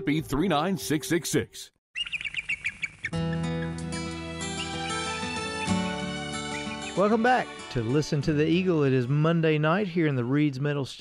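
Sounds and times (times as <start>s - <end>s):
eagle chirping call: 1.9s - 3.8s, 4.5s - 5.1s
music with sustained chords: 3.1s - 8.9s.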